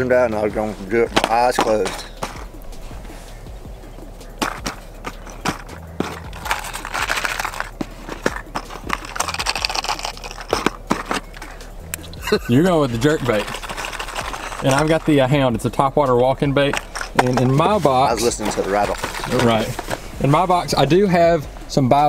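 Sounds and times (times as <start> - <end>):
lures rattling: 0.4 - 3.1, 3.9 - 20.6
packaging handled with clicks: 4.4 - 11.5.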